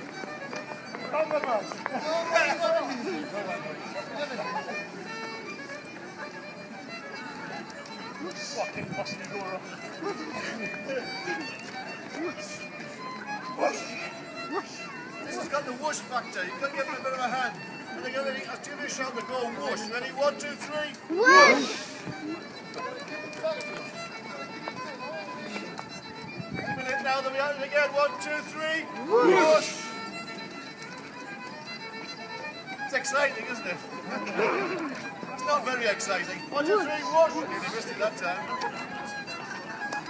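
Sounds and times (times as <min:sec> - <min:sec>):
fiddle playing a dance tune: 0:00.0 - 0:40.0
people talking: 0:33.0 - 0:39.8.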